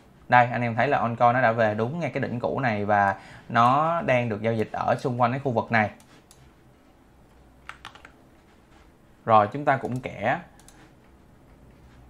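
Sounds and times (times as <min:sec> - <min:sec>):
low room hiss: 0:00.0 - 0:12.0
computer mouse clicks: 0:06.0 - 0:06.5, 0:09.8 - 0:11.2.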